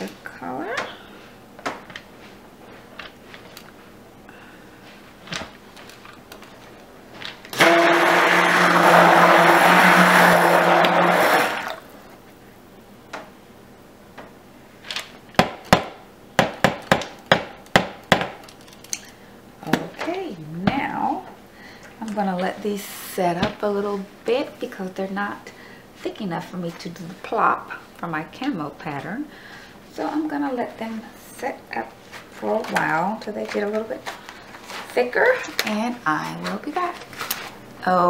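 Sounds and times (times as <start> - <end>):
stick blender whirring: 7.5 - 11.9.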